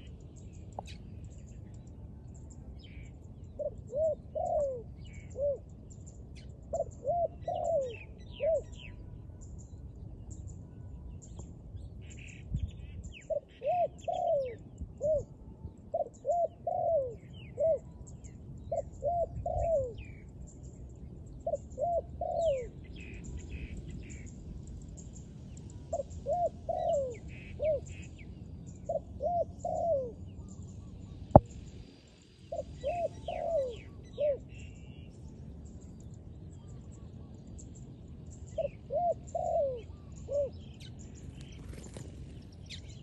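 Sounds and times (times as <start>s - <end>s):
small birds chirping: 0.0s - 15.2s, 16.0s - 43.0s
dove cooing: 3.6s - 5.8s, 6.7s - 8.9s, 13.3s - 18.0s, 18.7s - 20.2s, 21.4s - 24.2s, 25.9s - 28.1s, 28.8s - 30.4s, 32.5s - 35.0s, 38.6s - 40.6s.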